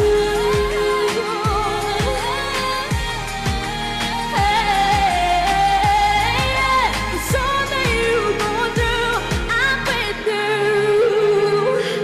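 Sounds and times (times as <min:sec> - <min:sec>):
steady low drum beat: 0:00.0 - 0:10.2
woman singing pop song: 0:00.0 - 0:12.0.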